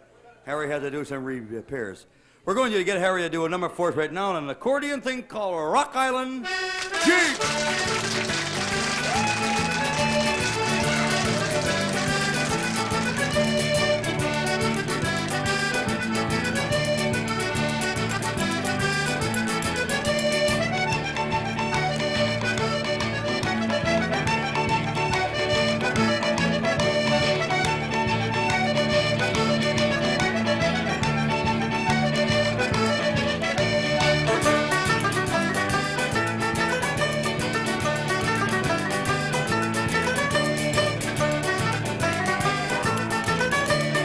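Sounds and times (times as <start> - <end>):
button accordion dance tune: 6.3 - 44.0
backing band: 6.4 - 44.0
drums keeping a steady beat: 6.8 - 20.8.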